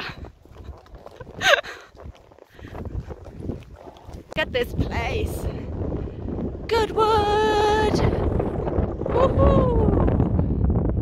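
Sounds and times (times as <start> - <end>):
horse hooves clip-clopping: 0.0 - 5.5.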